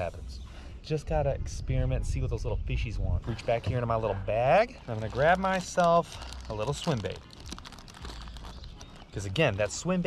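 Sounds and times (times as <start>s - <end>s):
plastic packs rustling and crinkling: 3.3s - 10.0s.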